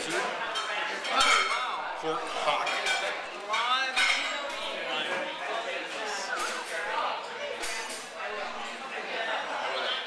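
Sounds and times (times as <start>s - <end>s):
dishes and cutlery clinking: 0.0s - 4.7s.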